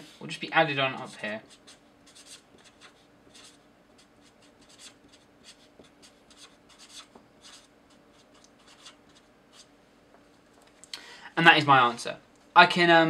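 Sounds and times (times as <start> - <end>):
marker scratching on paper: 0.9 - 9.7.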